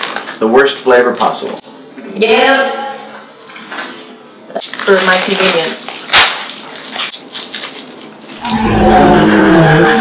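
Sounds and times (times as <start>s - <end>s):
plastic candy wrappers crinkling: 0.0s - 0.8s, 4.6s - 8.4s.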